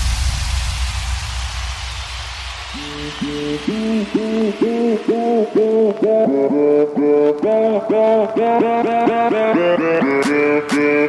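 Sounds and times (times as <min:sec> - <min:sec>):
low bass drone: 0:00.0 - 0:07.8
white noise wash: 0:00.0 - 0:08.4.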